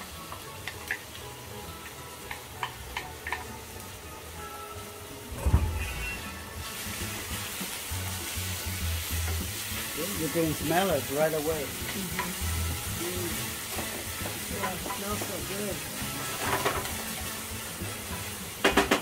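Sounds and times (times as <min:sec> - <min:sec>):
onions sizzling in hot oil: 0:00.0 - 0:19.0
loud thump: 0:05.3 - 0:06.0.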